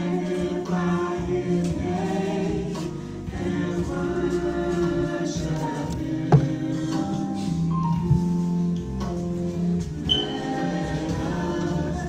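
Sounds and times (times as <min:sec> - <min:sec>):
choir singing gospel music: 0:00.0 - 0:12.0.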